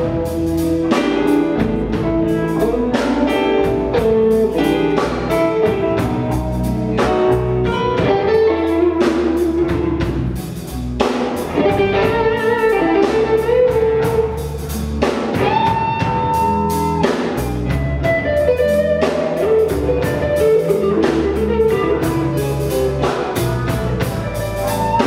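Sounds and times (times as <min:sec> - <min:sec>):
live blues band playing: 0:00.0 - 0:25.0.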